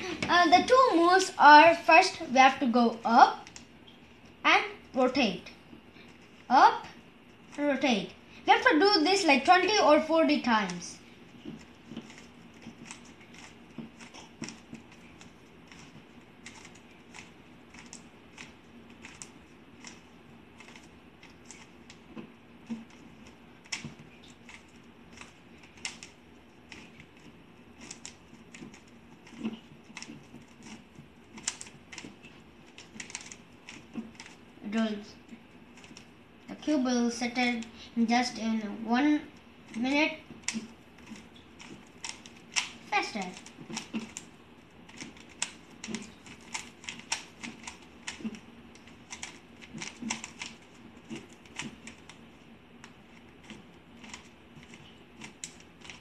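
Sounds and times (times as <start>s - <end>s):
puzzle cube clicking as twisted: 22.7s - 34.4s, 44.9s - 52.2s
puzzle cube layers clicking: 44.9s - 52.2s.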